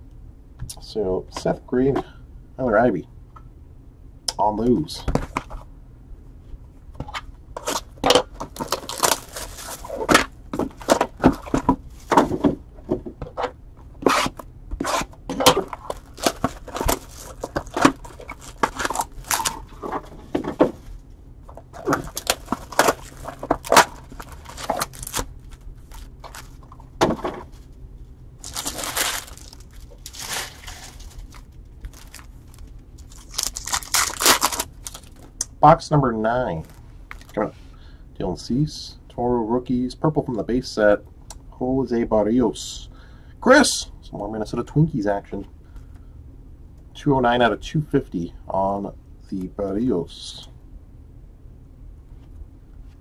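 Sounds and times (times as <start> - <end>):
pack wrappers crinkling: 7.6 - 11.6, 14.9 - 20.0, 21.5 - 26.9, 28.4 - 35.4, 36.6 - 37.5.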